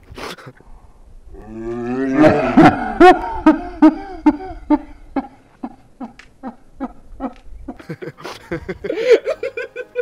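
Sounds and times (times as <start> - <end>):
man laughing hard: 2.2 - 10.0.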